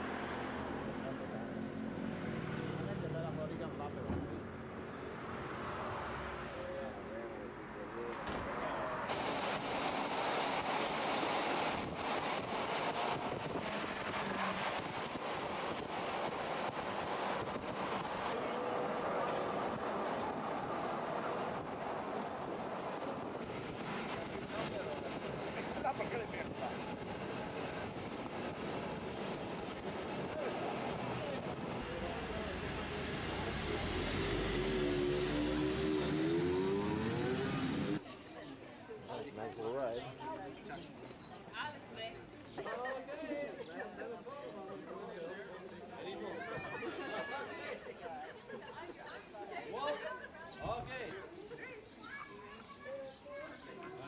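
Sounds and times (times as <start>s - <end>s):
train running: 9.1s - 34.7s.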